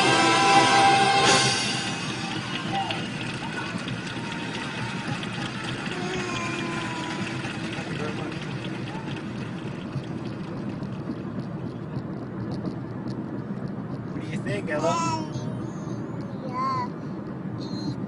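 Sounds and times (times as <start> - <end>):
road and engine noise in car: 0.0 - 18.0
faint voices: 1.9 - 12.4.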